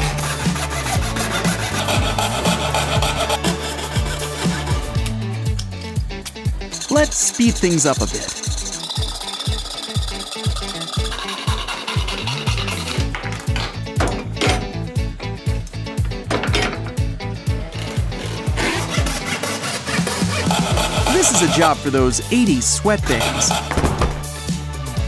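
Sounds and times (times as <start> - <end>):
hand saw rasping through cardboard: 0.0 - 4.8, 8.2 - 13.1, 17.8 - 21.9, 22.6 - 23.8
background music with steady beat: 0.0 - 25.0.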